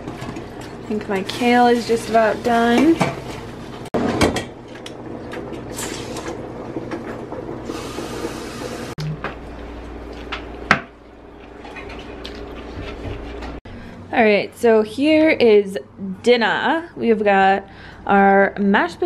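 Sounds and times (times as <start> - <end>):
kitchen hum: 0.0 - 17.9.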